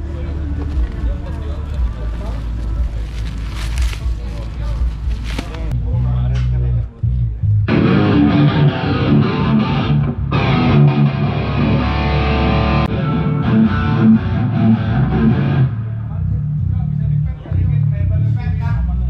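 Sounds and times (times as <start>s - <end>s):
faint voices: 0.0s - 11.0s
low bass notes: 0.0s - 19.0s
distorted electric guitar: 7.6s - 16.2s.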